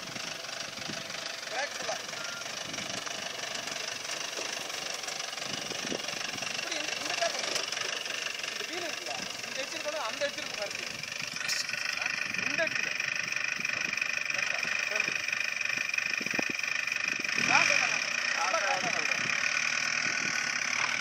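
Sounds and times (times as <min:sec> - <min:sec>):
jeep engine running at low speed: 0:00.0 - 0:21.0.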